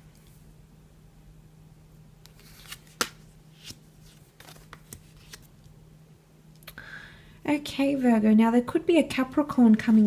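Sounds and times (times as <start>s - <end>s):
cards slapping on a wooden table: 2.3s - 3.8s.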